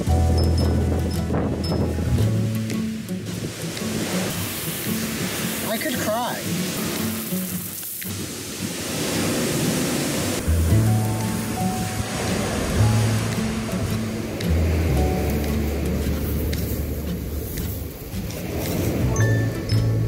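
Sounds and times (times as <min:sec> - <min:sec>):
background music with bass line: 0:00.0 - 0:03.8, 0:10.4 - 0:20.0
surf rushing: 0:00.0 - 0:20.0.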